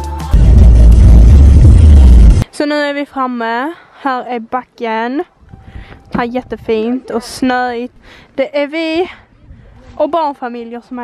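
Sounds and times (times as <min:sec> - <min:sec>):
backing music: 0:00.0 - 0:02.4.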